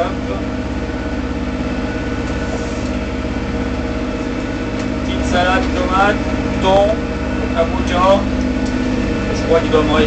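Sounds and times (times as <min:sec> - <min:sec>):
boat diesel engine droning: 0:00.0 - 0:10.0.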